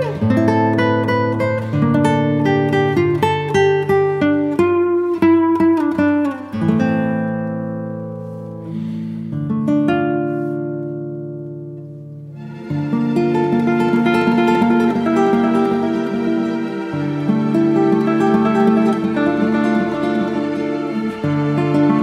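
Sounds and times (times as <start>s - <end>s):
acoustic guitar plucked notes: 0.0s - 22.0s.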